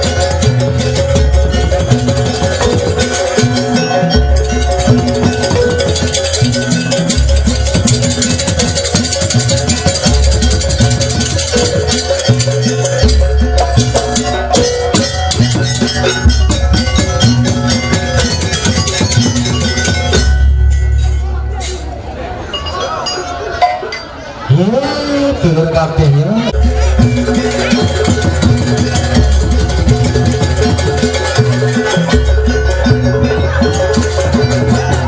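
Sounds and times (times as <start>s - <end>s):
hand drums and bass drum: 0.0s - 22.0s, 26.5s - 35.0s.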